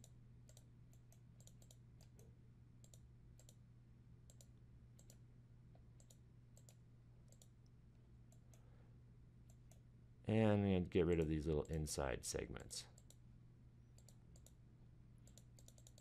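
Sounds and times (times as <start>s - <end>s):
faint computer mouse clicks: 0.0s - 3.6s, 4.3s - 5.2s, 6.0s - 7.5s, 14.0s - 14.6s, 15.2s - 16.0s
low steady hum: 0.0s - 16.0s.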